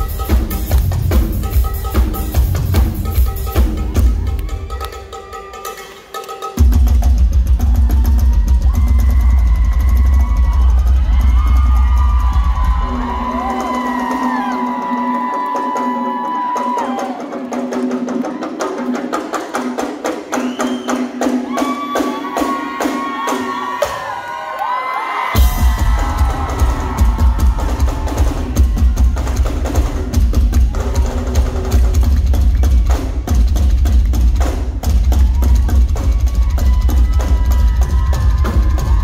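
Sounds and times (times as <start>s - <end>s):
rock drum solo: 0.0s - 5.8s, 6.6s - 17.3s, 25.2s - 39.0s.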